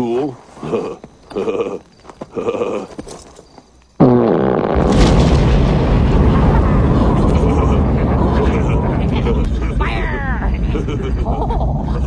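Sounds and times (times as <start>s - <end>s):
explosion blast: 4.1s - 12.0s
long steady rumble: 4.8s - 12.0s.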